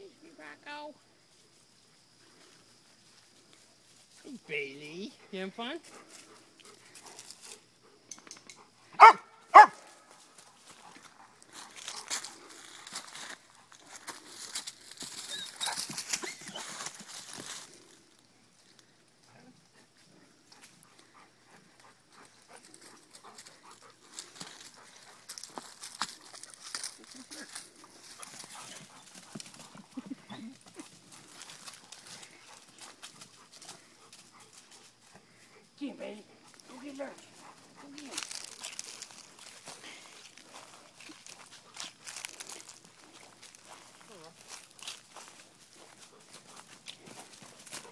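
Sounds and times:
dog barking: 9.0 - 9.9
rustling in dry leaves: 9.5 - 19.0, 22.6 - 35.5, 36.4 - 47.9.

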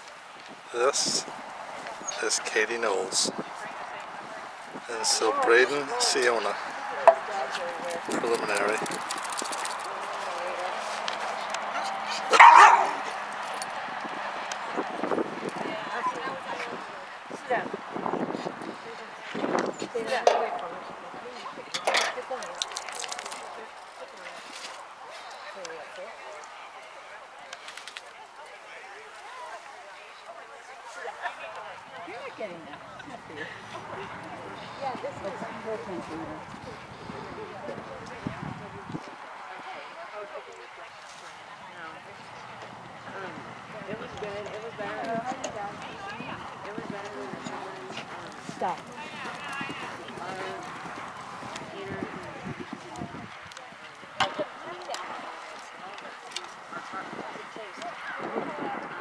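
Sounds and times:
quiet voices talking: 0.0 - 59.0.

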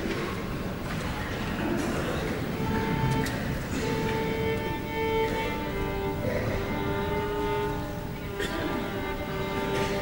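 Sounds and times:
low accompaniment: 2.4 - 10.0
violin sustained notes: 4.1 - 10.0.

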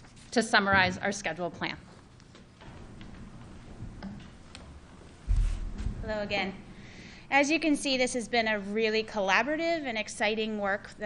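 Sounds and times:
low hum: 2.6 - 7.8.

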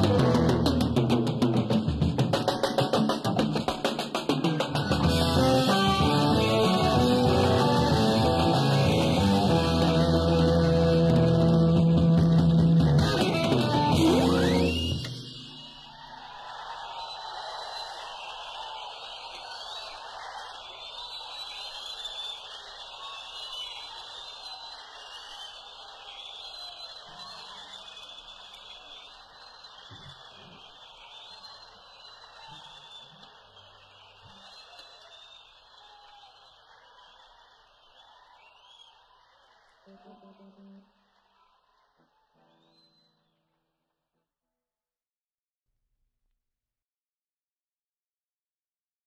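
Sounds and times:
audience applause and cheering: 0.0 - 43.1
jazz-rock band playing: 4.8 - 14.7
audience whistling: 12.3 - 43.6.

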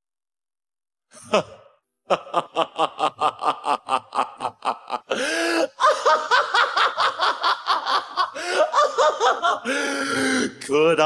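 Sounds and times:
man's breathy laugh: 1.1 - 10.5.

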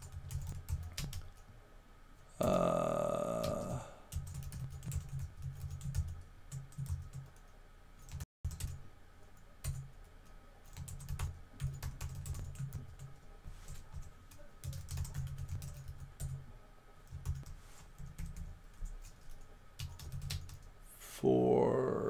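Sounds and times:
computer keyboard typing: 0.0 - 1.4, 3.5 - 8.8, 9.6 - 16.4, 17.1 - 20.7.

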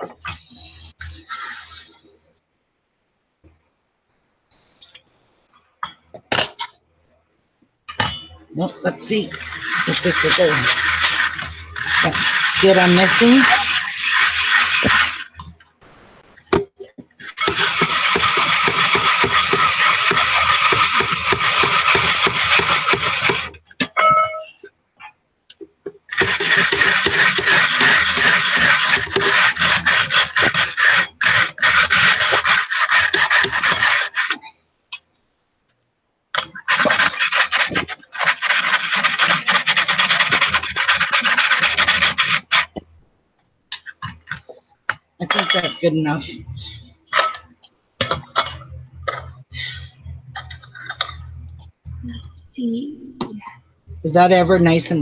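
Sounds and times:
powder rubbed through wire sieve: 0.7 - 2.1, 9.0 - 15.5, 17.2 - 23.6, 26.1 - 34.4, 36.4 - 42.8.

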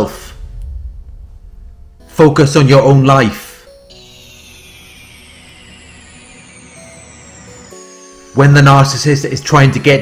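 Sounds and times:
ambient pad music: 0.0 - 10.0
thin high falling tone: 0.0 - 10.0.

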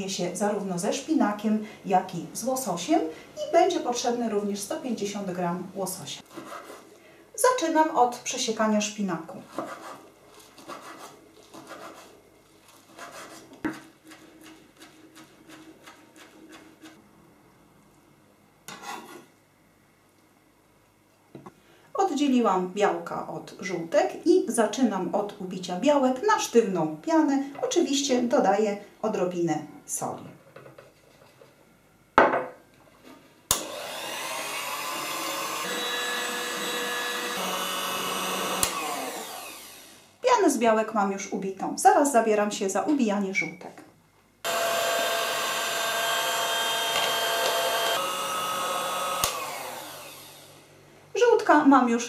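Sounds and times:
electric hand mixer whining: 33.6 - 40.1, 44.5 - 50.6.

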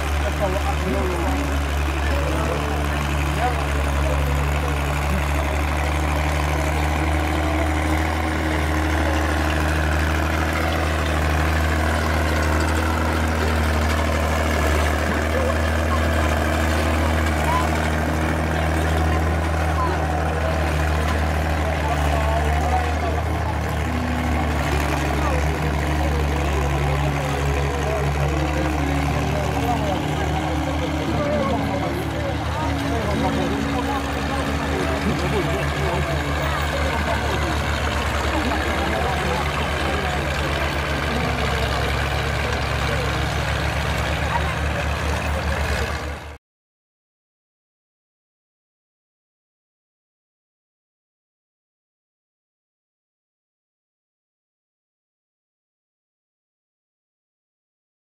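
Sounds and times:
crowd chatter: 0.0 - 46.4
tractor engines droning: 0.0 - 46.4.

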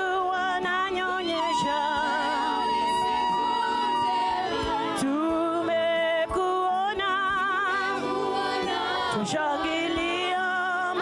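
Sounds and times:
woman singing gospel song: 0.0 - 11.0.

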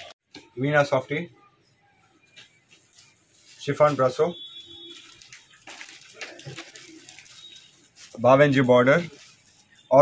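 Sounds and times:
fabric rustling: 2.2 - 10.0.

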